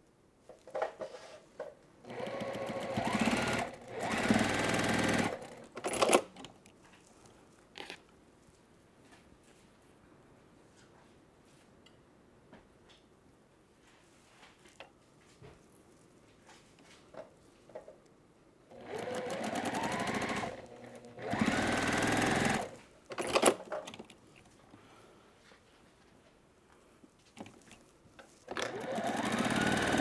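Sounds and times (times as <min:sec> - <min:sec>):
sewing machine stitching: 0:02.1 - 0:06.4, 0:18.7 - 0:23.6, 0:28.5 - 0:30.0.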